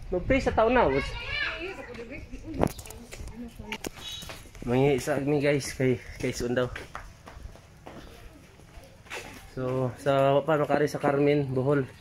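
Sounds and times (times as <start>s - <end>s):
children chattering and playing: 0.2s - 12.0s.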